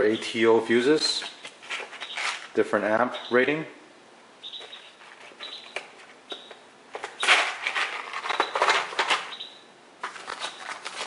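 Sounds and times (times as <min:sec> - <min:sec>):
plastic case clacking: 0:05.8 - 0:09.3
plastic bags crinkling: 0:07.2 - 0:09.3, 0:10.0 - 0:11.0.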